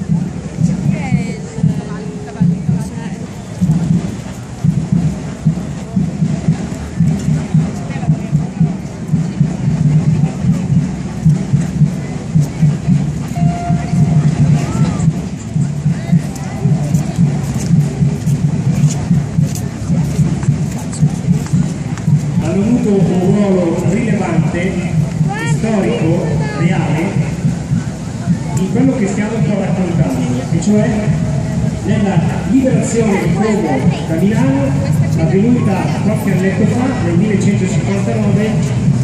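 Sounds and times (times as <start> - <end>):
crowd murmur: 0.0 - 39.0
marching drums beating: 0.0 - 39.0.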